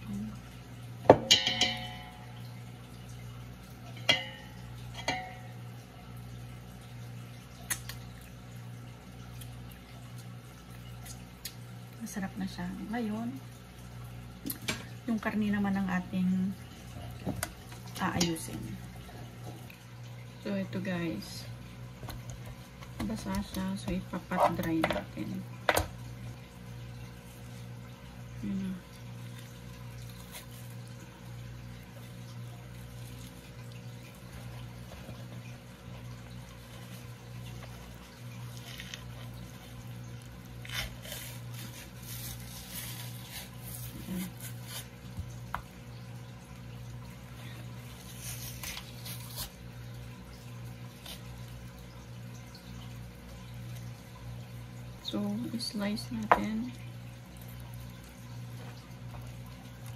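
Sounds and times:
damp squishing: 31.8 - 45.8.

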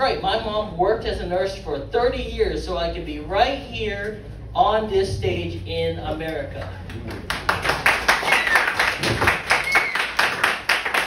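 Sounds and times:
audience clapping: 6.8 - 11.0.

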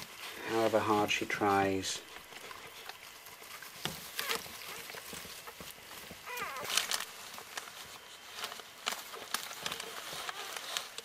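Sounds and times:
newspaper rustling: 0.0 - 11.0
puppy squeaking: 4.1 - 5.6, 6.2 - 7.0.

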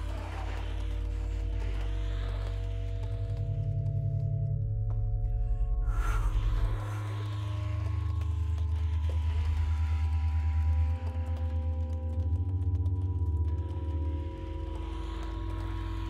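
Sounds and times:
low pulsing drone: 0.0 - 16.0.

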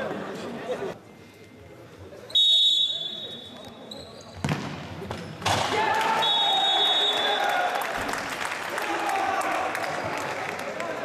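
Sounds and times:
players shouting and cheering: 5.5 - 11.0.

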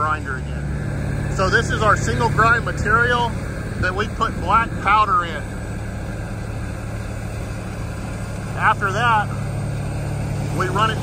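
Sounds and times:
heavy machinery engine droning: 0.0 - 11.0.

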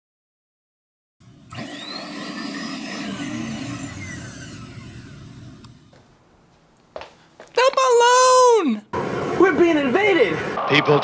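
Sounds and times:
loud rushing noise: 9.0 - 10.9.

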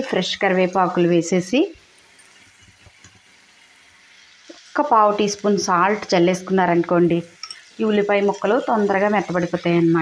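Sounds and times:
vegetables sizzling in oil: 0.0 - 10.0.

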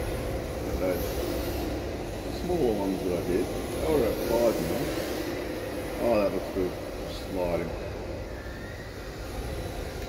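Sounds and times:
steady noisy hum: 0.0 - 10.0.

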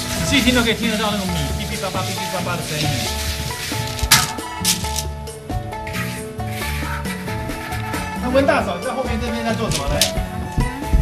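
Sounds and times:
rice stirred in a wok: 0.0 - 8.0
background music: 0.0 - 11.0.

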